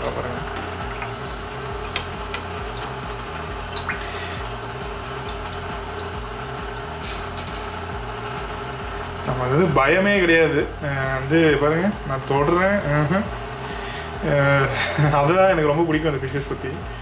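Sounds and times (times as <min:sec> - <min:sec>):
aquarium water trickling and bubbling: 0:00.0 - 0:09.3.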